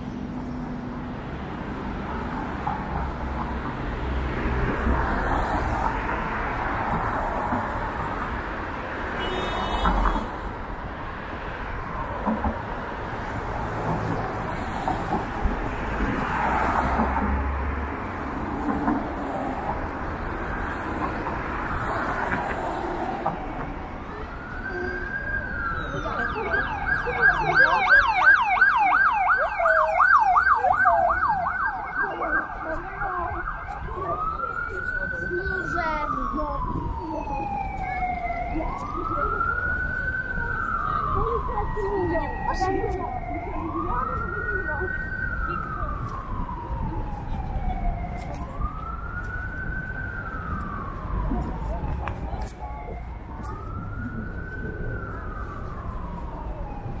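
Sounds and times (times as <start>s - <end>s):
city street noise: 0.0s - 57.0s
emergency vehicle siren: 0.0s - 57.0s.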